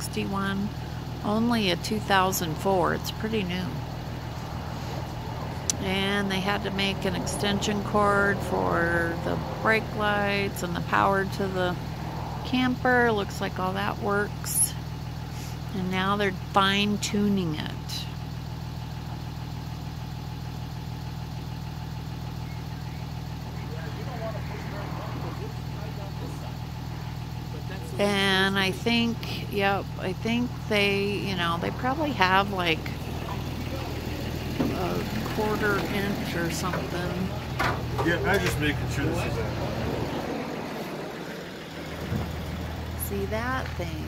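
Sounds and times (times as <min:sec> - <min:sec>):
vehicle engine idling: 0:00.0 - 0:44.0.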